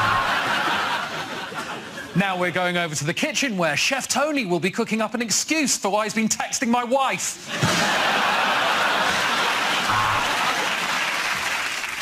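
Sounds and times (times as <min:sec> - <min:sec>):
audience laughing: 0:00.0 - 0:02.2, 0:07.4 - 0:11.5
audience clapping: 0:08.6 - 0:12.0.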